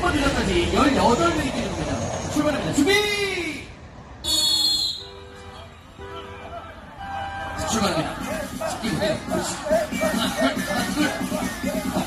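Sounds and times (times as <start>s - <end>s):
sharp high whistle blast: 4.2s - 5.3s.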